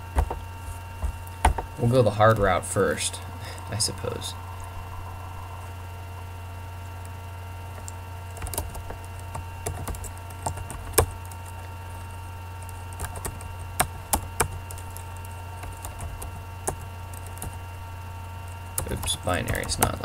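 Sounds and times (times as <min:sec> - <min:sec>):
steady electrical hum: 0:00.0 - 0:20.0
computer keyboard typing: 0:07.7 - 0:17.6, 0:18.6 - 0:20.0.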